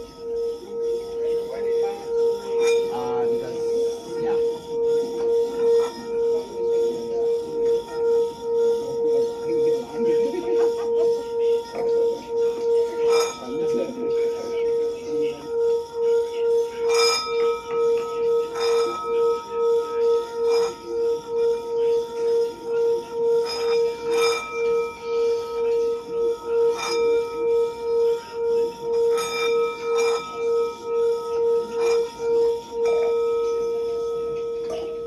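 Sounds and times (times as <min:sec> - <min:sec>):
singing bowl tone: 0:00.0 - 0:35.0.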